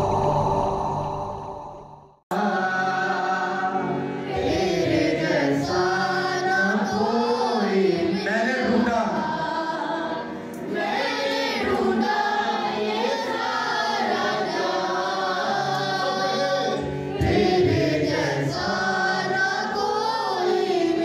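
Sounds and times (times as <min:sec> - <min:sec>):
harmonium accompaniment: 0:02.3 - 0:21.0.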